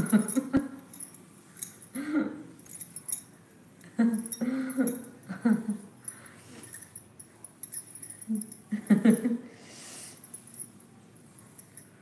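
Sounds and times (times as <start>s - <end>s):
glass bangles clinking: 0.0s - 3.4s, 4.1s - 9.3s, 10.2s - 12.0s.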